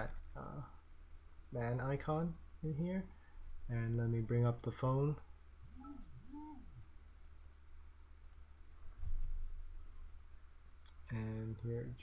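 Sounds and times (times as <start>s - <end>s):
faint mouse clicks: 8.2s - 8.5s.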